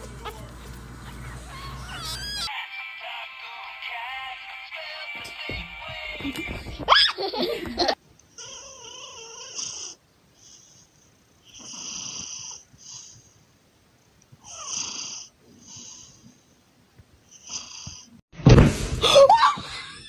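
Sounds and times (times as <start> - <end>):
cat snoring: 8.4 - 13.3, 14.4 - 16.3, 17.3 - 18.2.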